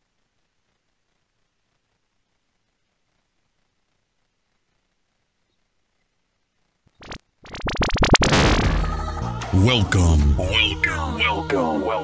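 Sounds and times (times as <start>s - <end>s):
electronic intro sound effect: 7.0s - 10.8s.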